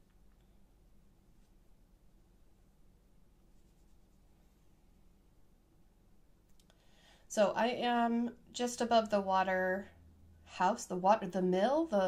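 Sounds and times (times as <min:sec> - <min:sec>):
fingers rustling linen fabric: 0:03.4 - 0:05.0.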